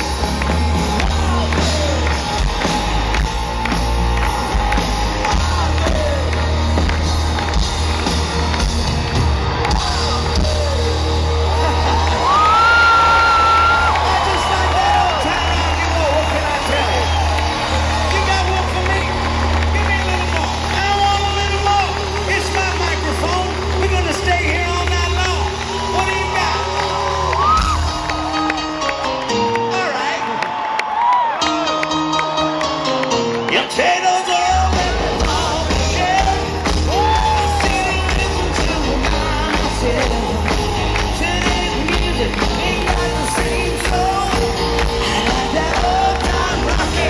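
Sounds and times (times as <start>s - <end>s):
lead vocals: 0.0s - 3.6s, 4.2s - 7.5s, 33.5s - 47.0s
heavy bass: 0.0s - 25.9s
crowd cheering: 0.0s - 47.0s
live rock band: 0.0s - 47.0s.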